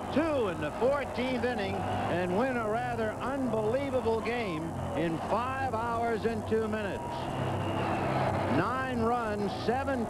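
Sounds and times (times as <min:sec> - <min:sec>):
steady background noise: 0:00.0 - 0:10.0
announcer talking: 0:00.1 - 0:07.3, 0:08.5 - 0:10.0.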